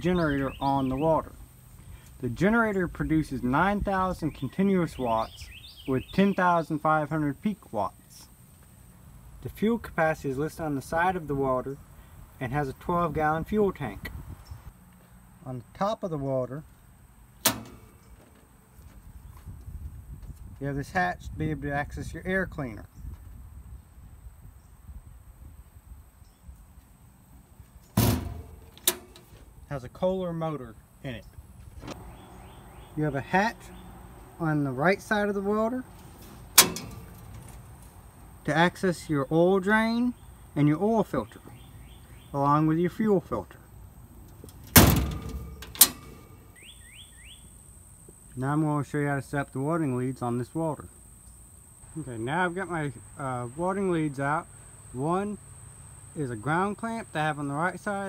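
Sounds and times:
metal latch snapping: 17.4s - 18.2s, 28.0s - 29.4s, 36.0s - 37.9s, 44.3s - 46.6s
metal hatch ringing: 17.4s - 18.3s, 28.0s - 29.4s, 31.8s - 37.8s, 44.4s - 46.7s.

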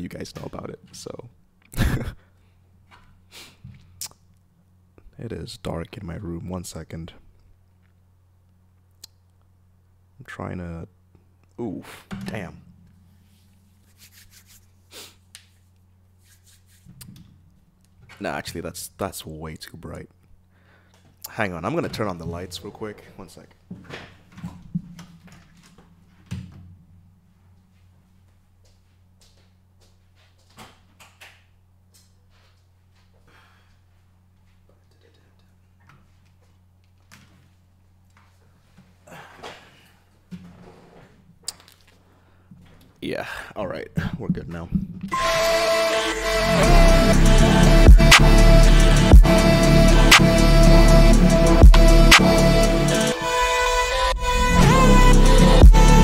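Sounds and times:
steady low hum: 0.0s - 16.4s, 43.4s - 56.0s
hands rubbing over face: 13.3s - 16.9s.

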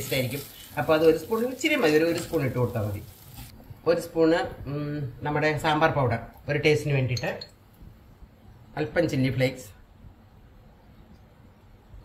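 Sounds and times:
person speaking: 0.0s - 3.1s.

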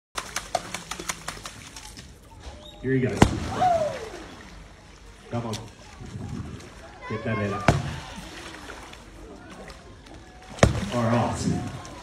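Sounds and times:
pole slapping water: 0.2s - 2.4s, 3.1s - 4.6s, 5.5s - 12.0s.

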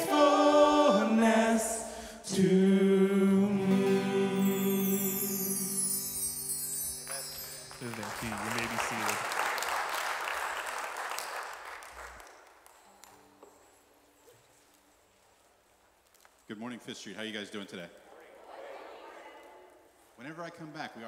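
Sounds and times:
congregation applauding: 6.9s - 12.8s.

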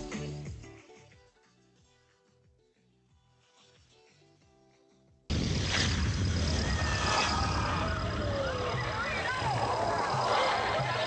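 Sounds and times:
faint shortwave broadcast music: 0.0s - 5.3s.

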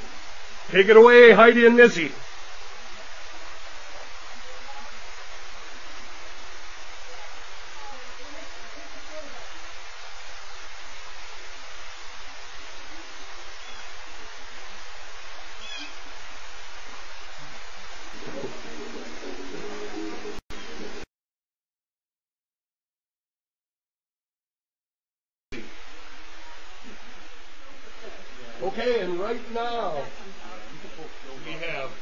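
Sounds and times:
steady rushing hiss: 0.0s - 21.1s, 25.6s - 32.0s
faint chirps: 13.4s - 14.2s, 15.6s - 16.0s
low steady tones: 18.0s - 21.1s.

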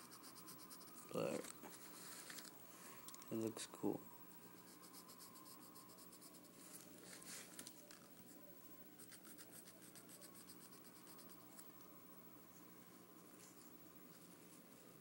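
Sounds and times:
pencil scratching on paper: 0.0s - 1.4s, 4.3s - 7.2s, 8.9s - 11.7s.

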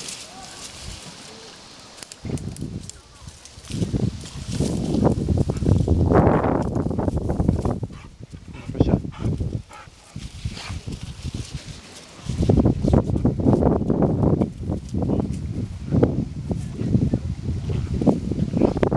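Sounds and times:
dry grass rustling and crackling: 0.0s - 18.9s
microphone rumbling noise: 2.2s - 18.9s.

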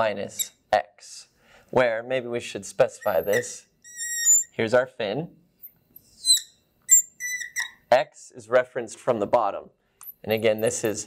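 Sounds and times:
marker squeaking on glass: 0.3s - 0.6s, 3.0s - 4.6s, 5.6s - 7.9s.

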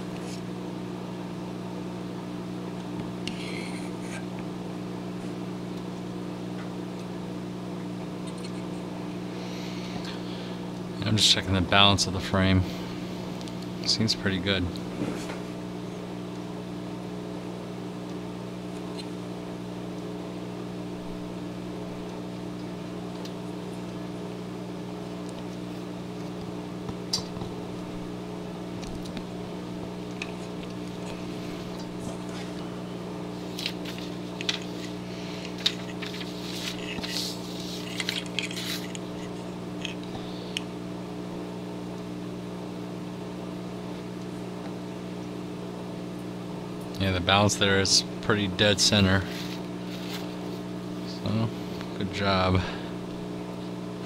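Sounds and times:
low electrical hum: 0.0s - 54.0s.

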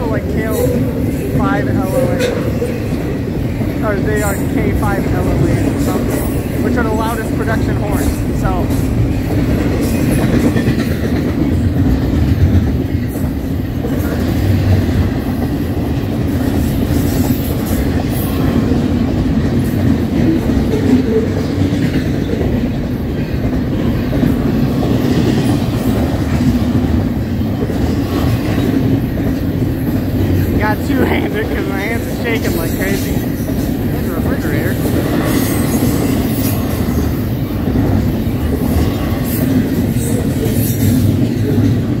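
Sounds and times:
freight train rumbling and rattling: 0.0s - 42.0s.

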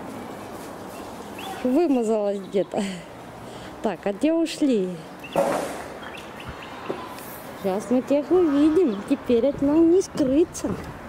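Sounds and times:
outdoor background noise: 0.0s - 11.0s
bird chirps: 5.2s - 7.1s.

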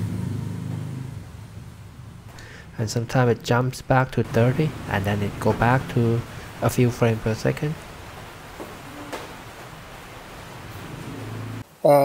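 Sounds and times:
steady background hiss: 0.4s - 12.0s.

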